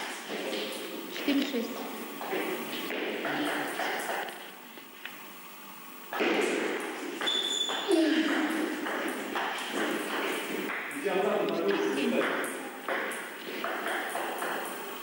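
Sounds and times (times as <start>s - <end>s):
table tennis ball pinging: 6.1s - 11.1s, 12.1s - 14.9s
players' voices: 7.8s - 14.0s.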